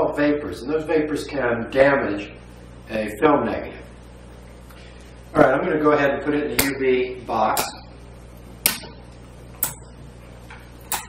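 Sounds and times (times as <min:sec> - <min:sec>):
low steady hum: 0:00.0 - 0:11.0
sharp ticks: 0:06.6 - 0:06.8, 0:09.6 - 0:09.8.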